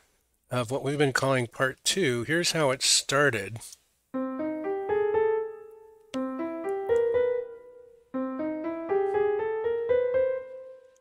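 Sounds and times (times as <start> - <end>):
piano phrases climbing upward: 4.2 - 11.0.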